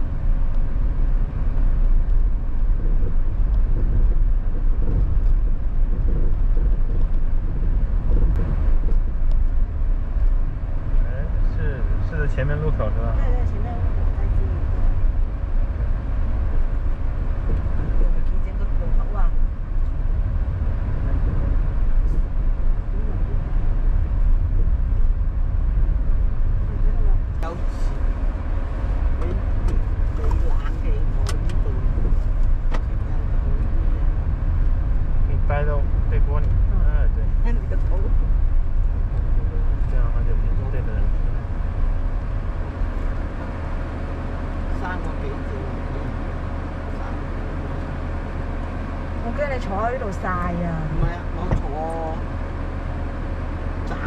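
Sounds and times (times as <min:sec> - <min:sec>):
car engine and tyre rumble: 0:00.0 - 0:54.0.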